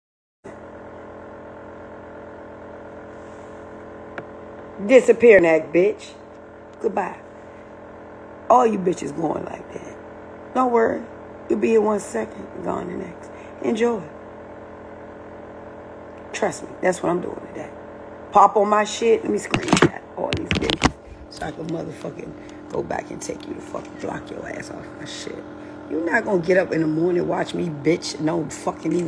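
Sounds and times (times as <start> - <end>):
steady hum of held tones: 0.6 - 29.0.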